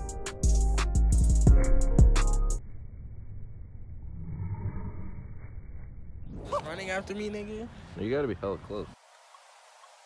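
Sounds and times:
low muffled outdoor rumble: 2.6s - 9.0s.

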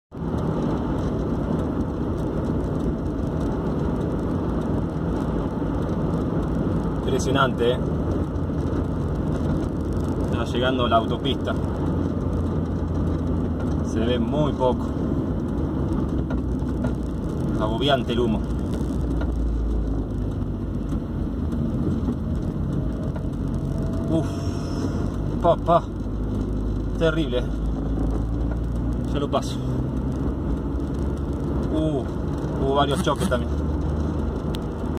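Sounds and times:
car road and engine noise: 0.1s - 34.9s.

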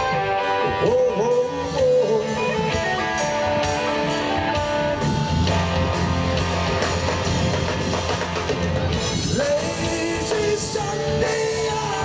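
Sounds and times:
bass guitar: 0.0s - 12.0s
drum kit beat: 0.0s - 12.0s
electric guitars: 0.0s - 12.0s.

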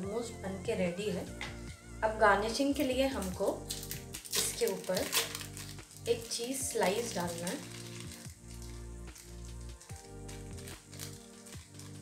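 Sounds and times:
background music with low pulse: 0.0s - 12.0s.

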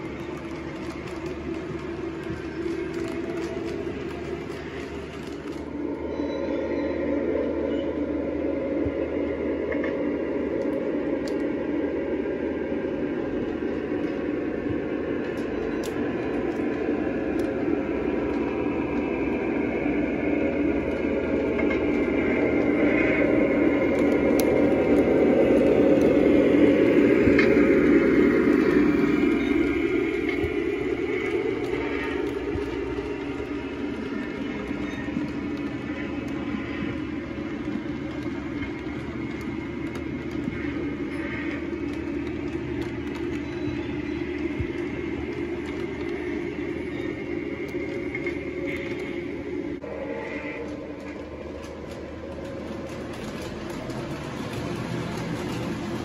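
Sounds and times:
model train rolling rumble: 0.0s - 56.0s
wheel clicks: 50.6s - 56.0s.

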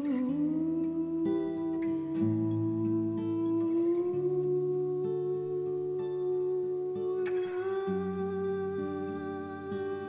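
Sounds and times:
fingerpicked acoustic guitar: 0.0s - 10.0s
person humming a note: 0.0s - 10.0s.

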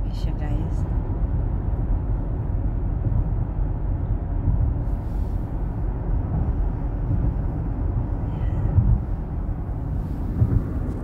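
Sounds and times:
tyres on snowy road: 0.0s - 11.0s
car bump: 8.6s - 11.0s.

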